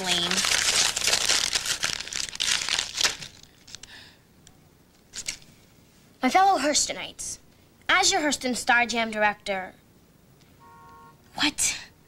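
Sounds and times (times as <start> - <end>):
paper being crumpled: 0.0 - 3.9.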